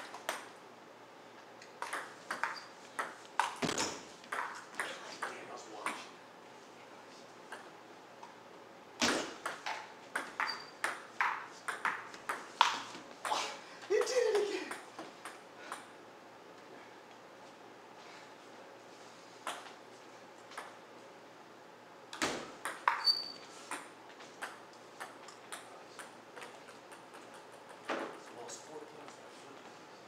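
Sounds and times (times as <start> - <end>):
table tennis ball hits: 1.8 - 6.0, 9.0 - 13.4, 22.1 - 23.1, 23.7 - 28.2.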